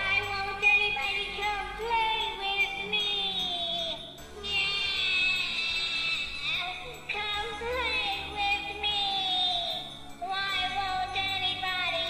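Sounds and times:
toy doll high sung phrase: 0:00.6 - 0:12.0.

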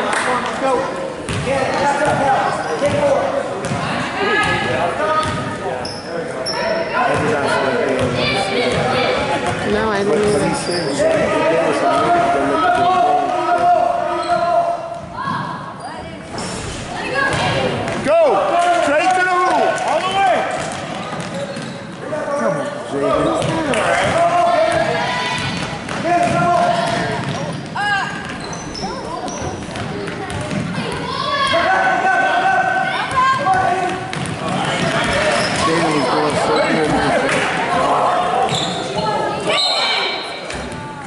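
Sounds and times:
spectators' voices: 0:00.0 - 0:41.0
sneakers squeaking: 0:01.1 - 0:12.3, 0:14.1 - 0:18.0, 0:20.5 - 0:31.6, 0:32.9 - 0:41.0.

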